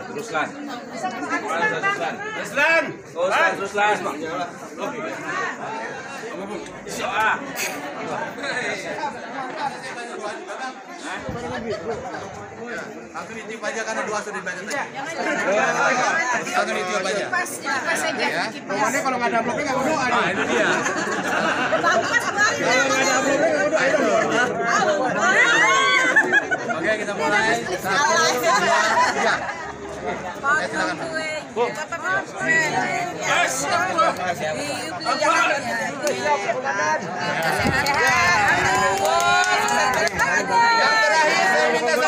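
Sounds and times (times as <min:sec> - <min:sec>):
indistinct chatter of people: 0:00.0 - 0:42.0.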